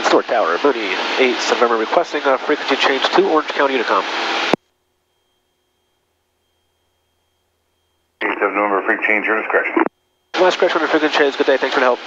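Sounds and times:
controller's voice over radio: 0:08.2 - 0:11.9.

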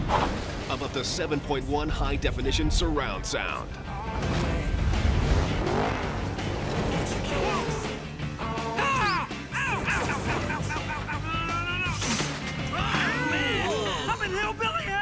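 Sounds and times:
trailer music: 0:01.3 - 0:15.0
crash effects: 0:04.1 - 0:07.4.

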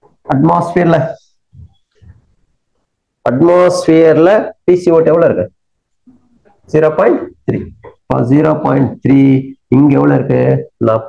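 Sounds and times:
man speaking: 0:00.2 - 0:01.7, 0:03.2 - 0:05.5, 0:06.6 - 0:11.0.

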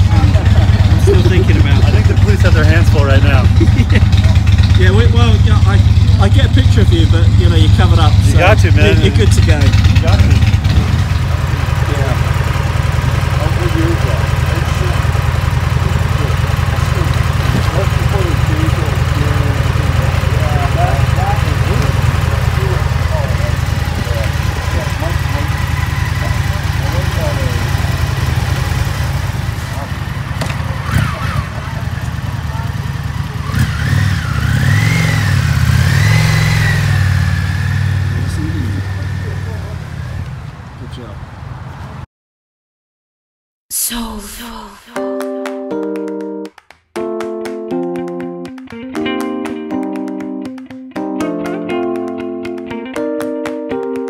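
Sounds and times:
motorcycle engine idling and revving: 0:00.0 - 0:42.0.

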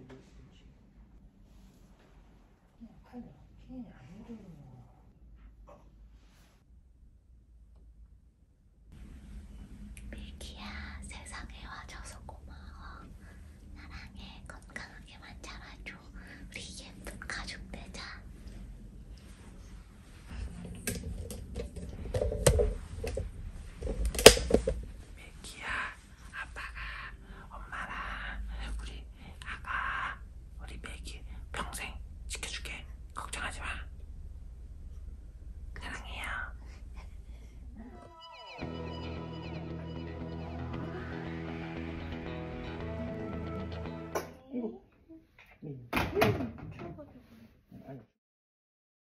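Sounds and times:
faint low hum: 0:00.0 - 0:48.1
woman whispering: 0:02.8 - 0:05.0, 0:10.0 - 0:18.7, 0:25.1 - 0:33.9, 0:35.8 - 0:38.2.

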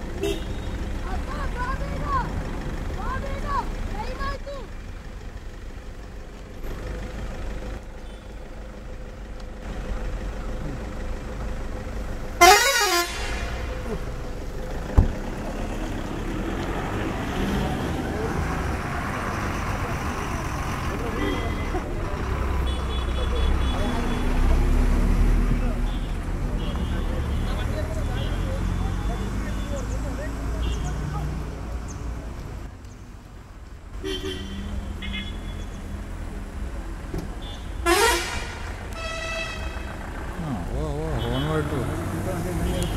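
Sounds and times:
low engine rumble: 0:00.0 - 0:34.0, 0:34.6 - 0:42.9.

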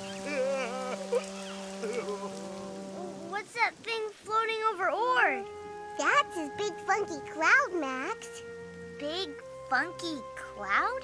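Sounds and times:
cartoon dragon crying: 0:00.2 - 0:02.4
held music chord: 0:05.0 - 0:11.0.

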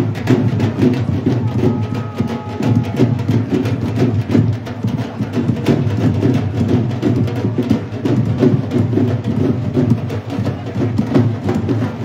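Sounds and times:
fast drum strikes: 0:00.0 - 0:12.0.

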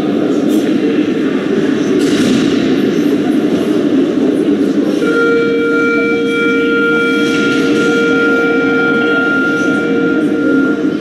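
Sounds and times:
arena crowd hubbub: 0:00.0 - 0:11.0
held tone over public address: 0:05.0 - 0:11.0.

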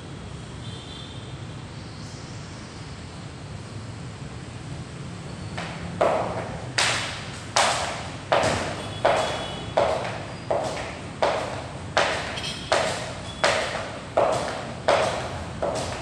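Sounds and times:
battle ropes slapping tiled floor: 0:05.6 - 0:16.0.

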